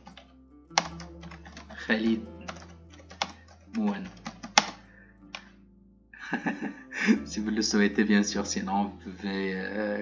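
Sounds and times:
typing on computer keyboard: 0.0s - 1.8s, 2.5s - 5.5s.

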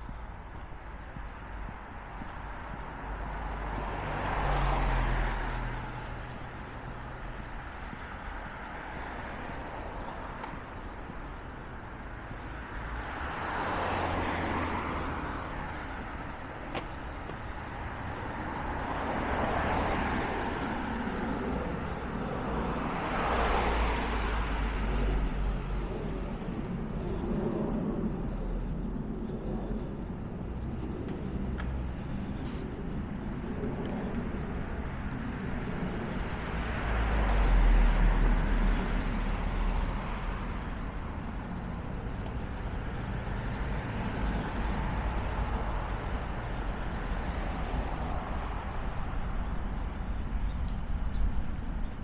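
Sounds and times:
cars passing: 0.0s - 52.0s
low rumble: 24.2s - 36.0s.

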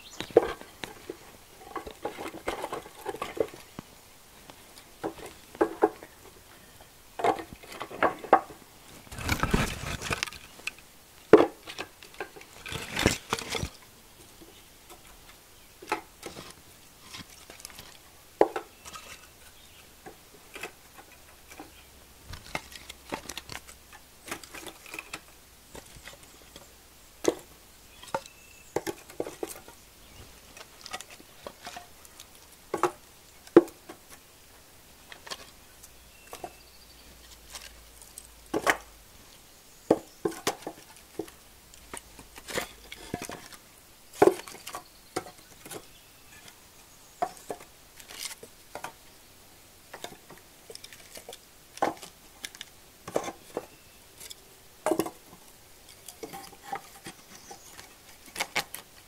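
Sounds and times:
wooden sticks knocking and clattering: 0.2s - 6.4s, 7.2s - 15.1s, 15.8s - 19.4s, 20.0s - 34.2s, 37.2s - 39.0s, 39.9s - 43.6s, 44.2s - 46.6s, 47.2s - 49.0s, 49.9s - 59.0s.

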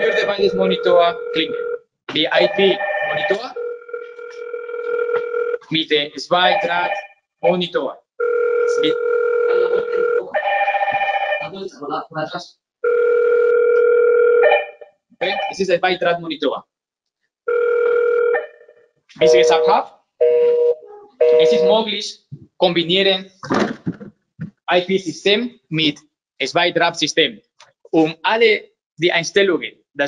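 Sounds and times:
electronic beep tone: 0.0s - 1.6s, 2.2s - 3.6s, 6.5s - 7.1s, 15.2s - 15.6s, 19.2s - 19.7s, 20.4s - 21.9s
intercom ringing tone: 0.0s - 7.1s, 8.2s - 11.6s, 12.9s - 15.6s, 19.2s - 22.0s.

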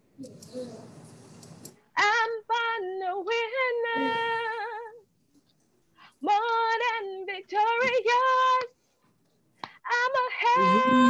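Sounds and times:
woman singing unaccompanied: 2.0s - 5.0s, 6.2s - 8.7s, 9.9s - 11.0s.

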